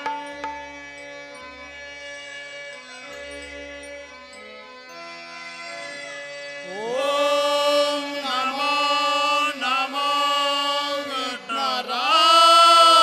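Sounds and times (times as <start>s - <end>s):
instrumental drone: 0.0s - 13.0s
person singing devotional melody: 0.0s - 13.0s.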